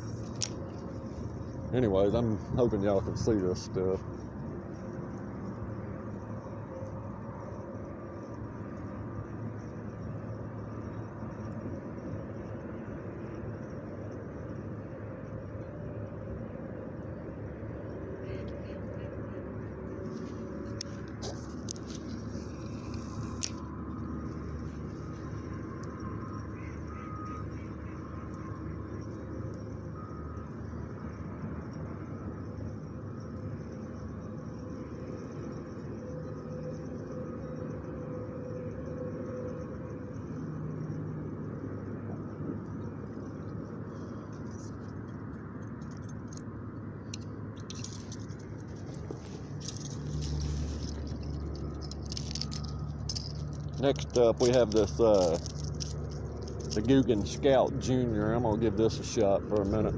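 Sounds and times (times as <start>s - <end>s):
outdoor background noise: 0.0s - 59.9s
clicks and handling noise: 20.1s - 24.5s, 44.3s - 46.5s, 47.1s - 57.7s
faint calls: 26.4s - 29.2s.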